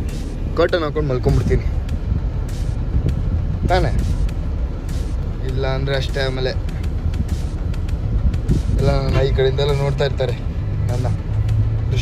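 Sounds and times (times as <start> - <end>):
bus engine rumble: 0.0 - 12.0
road noise: 0.0 - 12.0.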